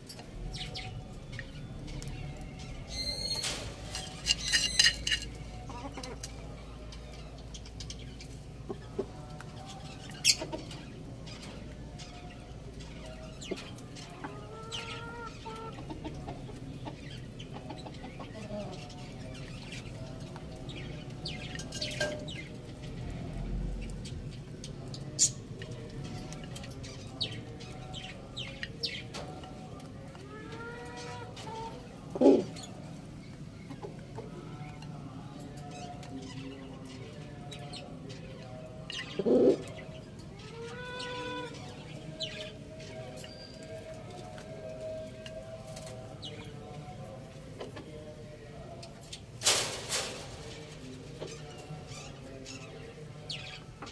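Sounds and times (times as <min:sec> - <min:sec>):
chickens clucking: 0:00.2 - 0:23.1, 0:23.8 - 0:53.9
high falling bird chirp: 0:02.9 - 0:05.1.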